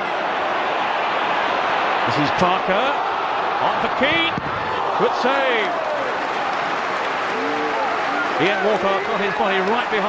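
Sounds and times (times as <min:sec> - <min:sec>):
stadium crowd hubbub: 0:00.0 - 0:10.0.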